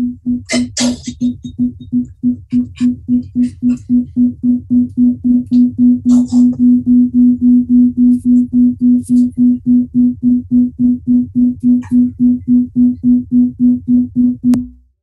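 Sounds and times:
pulsing electronic keyboard note: 0:00.0 - 0:14.7.

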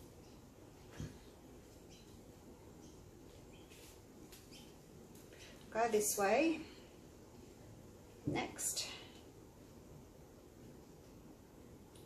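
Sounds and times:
faint bird chirps: 0:00.0 - 0:04.9.

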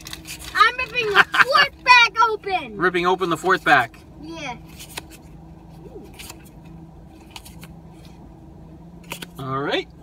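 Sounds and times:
cards clicking and scraping: 0:00.0 - 0:01.6, 0:04.6 - 0:08.2, 0:09.0 - 0:09.4.

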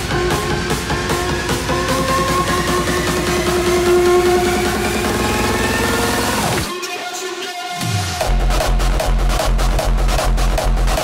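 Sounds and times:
hardstyle dance music: 0:00.0 - 0:11.0.

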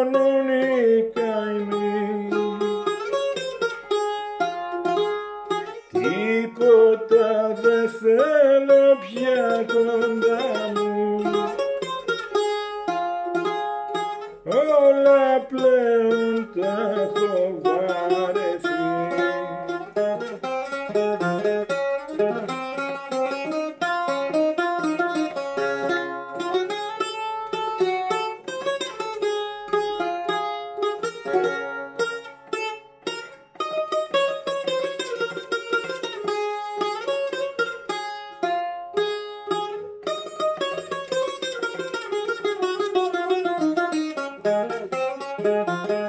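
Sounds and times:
bouzouki playing: 0:00.0 - 0:46.0.

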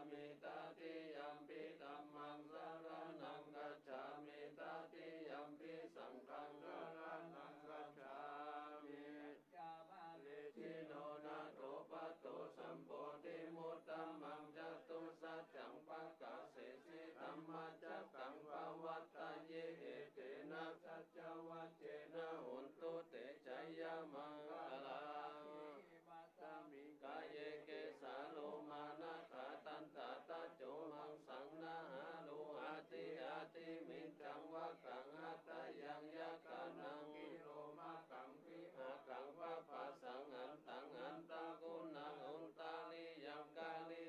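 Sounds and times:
group of monks chanting: 0:00.0 - 0:44.0.

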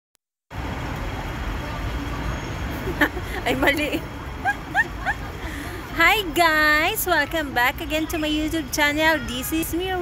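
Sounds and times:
outdoor background rumble: 0:00.5 - 0:10.0.

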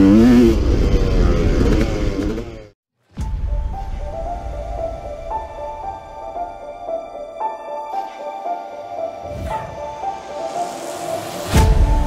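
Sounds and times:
gentle slow melody: 0:03.2 - 0:12.0.

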